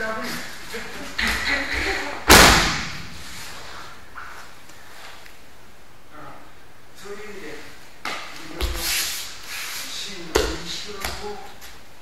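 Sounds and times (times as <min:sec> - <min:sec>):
body striking mat: 0:02.3 - 0:03.2.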